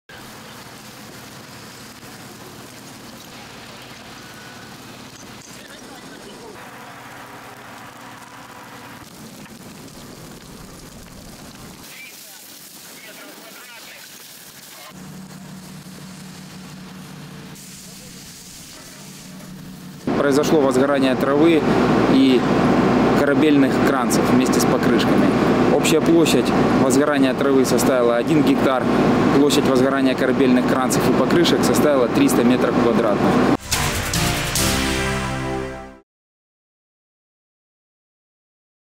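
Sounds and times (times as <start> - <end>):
large fire rushing: 0.1 - 33.6.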